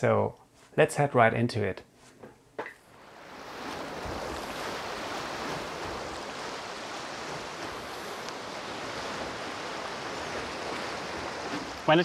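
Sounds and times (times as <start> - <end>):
sea surf rushing among boulders: 3.0 - 12.0.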